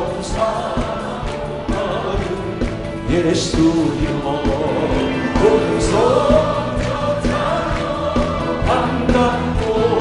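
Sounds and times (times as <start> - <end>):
man singing into microphone: 0.0 - 6.8
band with steady beat: 0.0 - 10.0.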